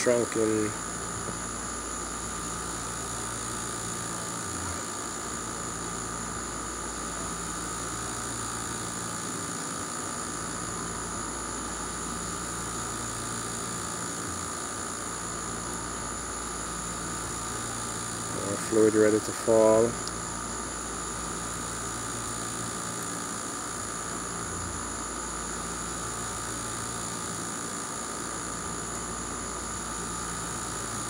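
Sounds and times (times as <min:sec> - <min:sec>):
mechanical hum and hiss: 0:00.0 - 0:31.0.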